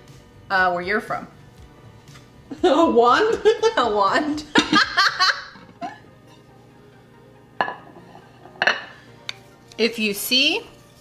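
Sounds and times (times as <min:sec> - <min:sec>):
quiet background music: 0:00.0 - 0:11.0
plate clinking on glass bowl: 0:07.6 - 0:09.0.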